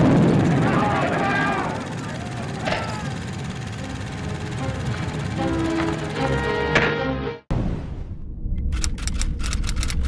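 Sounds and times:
loud low rumble: 0.0s - 6.6s.

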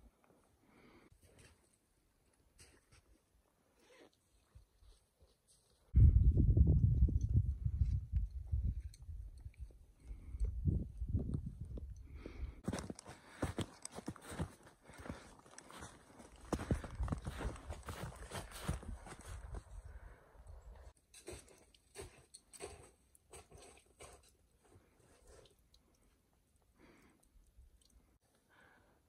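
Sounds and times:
footsteps crunching on snow: 12.6s - 19.7s.

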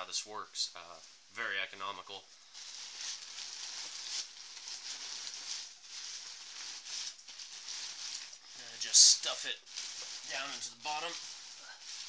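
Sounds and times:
plastic bag crinkling: 2.5s - 12.0s.

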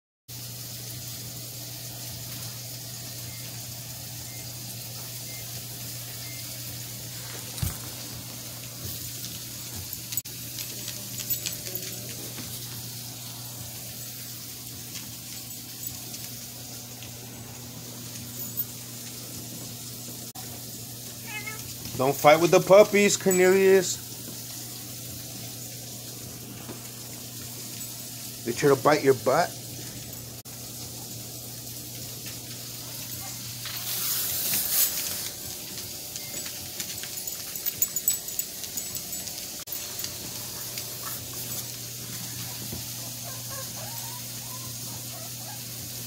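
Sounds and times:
animals scuffling on hard floor: 5.5s - 29.0s, 32.0s - 45.9s.

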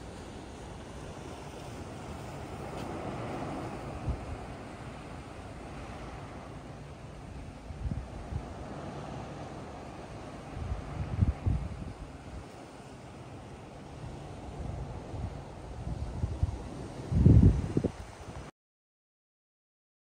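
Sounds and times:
sea surf: 0.0s - 18.5s
wind gusting across microphone: 0.0s - 18.5s.

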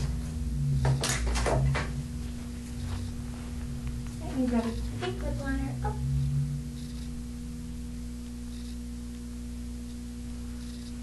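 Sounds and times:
electrical hum: 0.0s - 11.0s
faint room noise: 0.0s - 11.0s.

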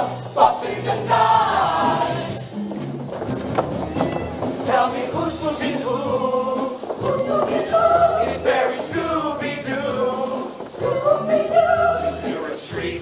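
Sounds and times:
choir singing in harmony: 0.0s - 2.4s, 4.6s - 13.0s.

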